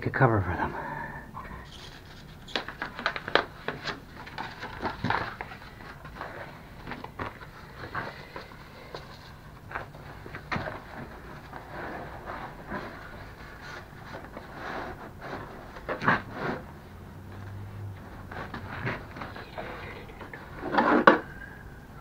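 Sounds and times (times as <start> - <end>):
steady low hum: 0.0 - 2.4.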